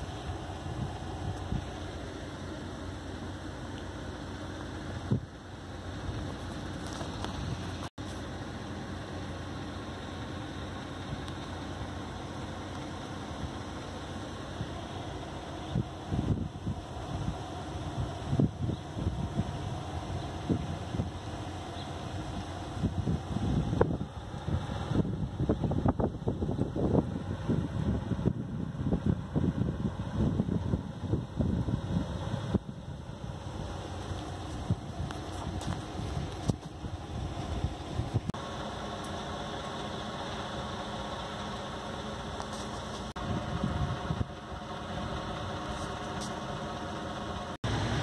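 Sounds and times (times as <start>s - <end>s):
low outdoor rumble: 0.0s - 48.0s
wind buffeting microphone: 15.6s - 21.4s, 22.0s - 38.4s, 43.1s - 46.8s.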